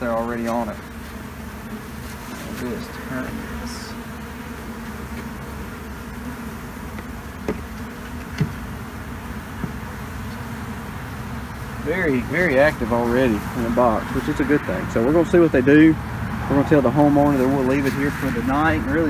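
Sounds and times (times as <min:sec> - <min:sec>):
honeybees buzzing: 0:00.0 - 0:19.0.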